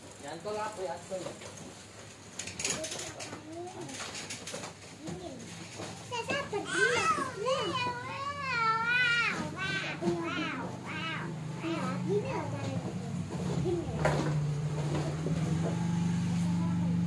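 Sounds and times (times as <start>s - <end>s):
child's high wavering voice: 6.1s - 12.9s.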